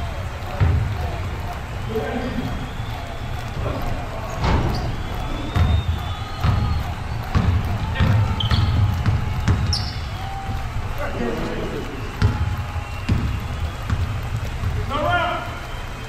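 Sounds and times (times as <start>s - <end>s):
players' voices: 0.0s - 16.0s
basketball bouncing on hardwood floor: 0.5s - 1.0s, 5.6s - 10.6s, 13.1s - 14.9s
shoe squeak: 4.3s - 6.8s, 8.0s - 10.2s.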